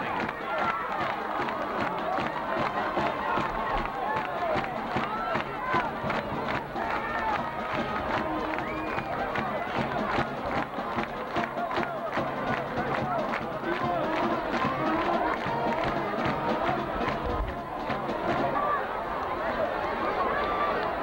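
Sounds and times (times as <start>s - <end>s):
music: 0.0s - 18.8s
spectators talking and calling out: 0.0s - 21.0s.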